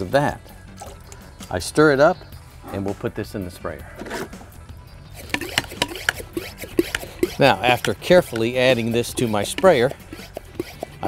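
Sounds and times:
plastic pump clicking: 5.2 - 8.6, 9.2 - 11.0
liquid sloshing in sprayer: 5.2 - 11.0.

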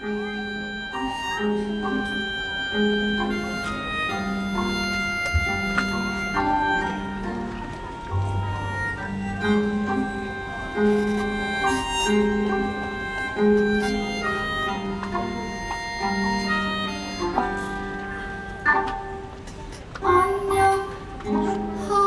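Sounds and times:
live band playing jazz: 0.0 - 22.0.

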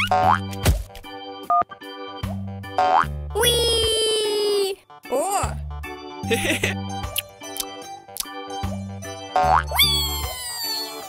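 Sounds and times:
children's background music: 0.0 - 11.0
cartoon sliding whistle: 9.7 - 11.0.

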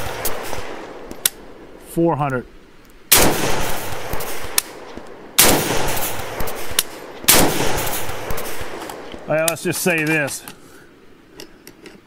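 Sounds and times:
rifle shots echoing: 0.0 - 1.6, 3.1 - 9.3.

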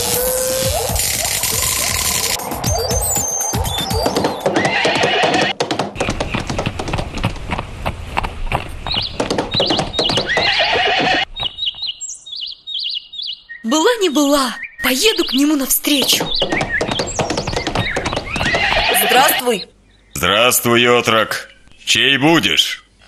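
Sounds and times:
horse hooves galloping: 0.0 - 11.3, 15.8 - 19.6
music: 0.1 - 4.5
birdsong chirps: 0.7 - 5.3, 8.4 - 20.2
horse whinnying: 4.0 - 5.6, 10.3 - 11.3, 18.3 - 19.7.

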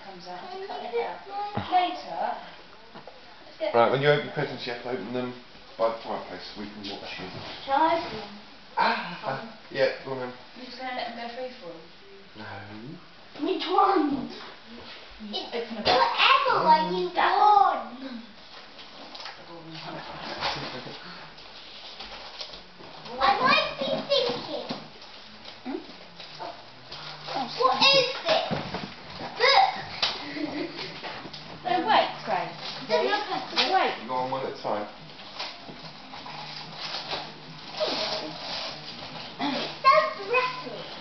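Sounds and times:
quiet room sounds: 0.0 - 41.0
wrapping paper rustling: 35.1 - 41.0.

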